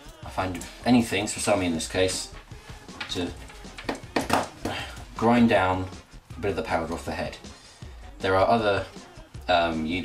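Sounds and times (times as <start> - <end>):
man speaking: 0.3 - 2.4, 3.0 - 3.6, 4.6 - 7.4, 8.2 - 8.9.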